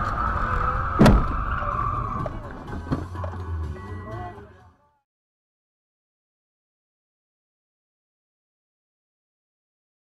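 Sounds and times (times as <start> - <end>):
car tyres skidding: 0.0 - 3.2.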